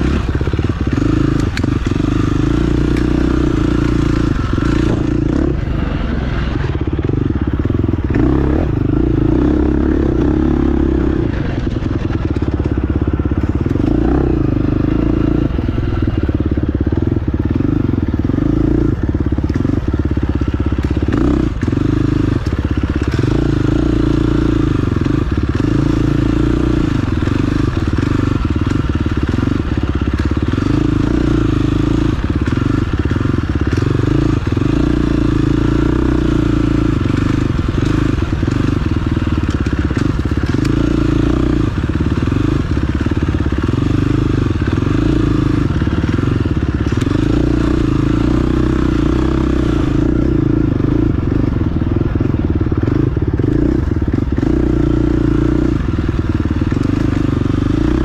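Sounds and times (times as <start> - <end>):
off-road engine revving: 0.0 - 58.0.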